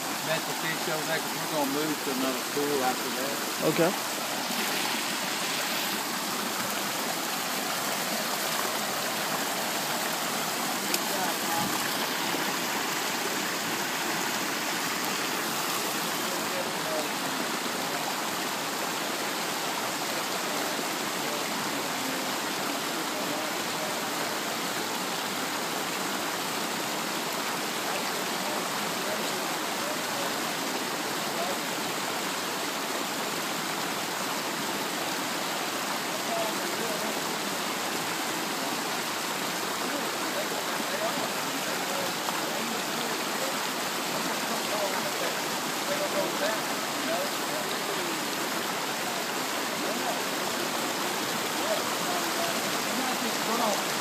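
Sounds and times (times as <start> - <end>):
river water rushing: 0.0 - 54.0.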